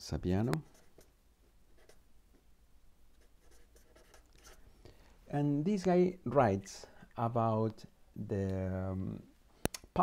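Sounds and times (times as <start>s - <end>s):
marker pen writing: 0.4s - 2.5s, 3.1s - 4.6s.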